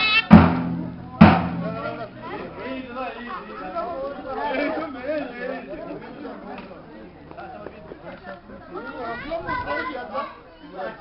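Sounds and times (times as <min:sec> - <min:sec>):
people talking over one another: 0:00.0 - 0:11.0
children's voices: 0:08.2 - 0:11.0.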